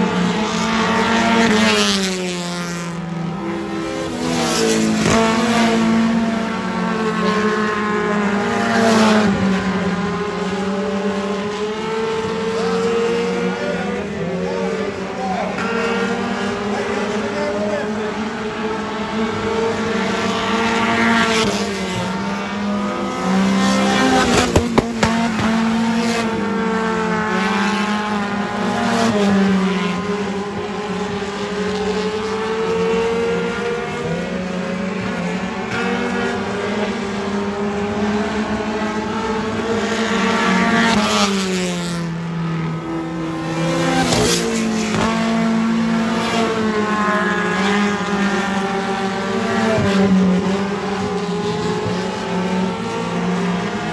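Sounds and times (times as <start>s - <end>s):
race car engines: 0.0s - 53.9s.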